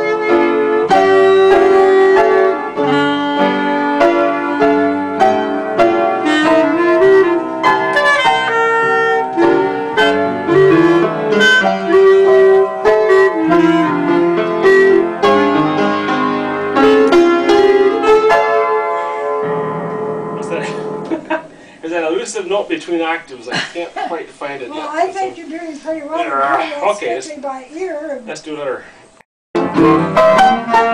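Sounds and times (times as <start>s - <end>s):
clarinet melody: 0.0s - 20.6s, 29.6s - 30.9s
piano chords: 0.0s - 27.2s, 29.6s - 30.9s.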